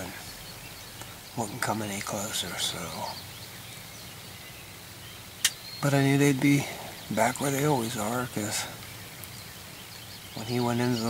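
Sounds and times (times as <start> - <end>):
faint steady hiss: 0.0 - 11.0
man's voice: 1.4 - 3.2, 5.8 - 8.8, 10.4 - 11.0.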